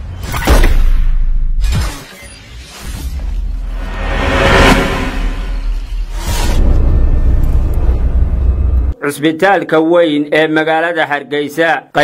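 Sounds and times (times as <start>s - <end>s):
logo intro music: 3.5s - 8.8s
falling sweep: 3.6s - 7.1s.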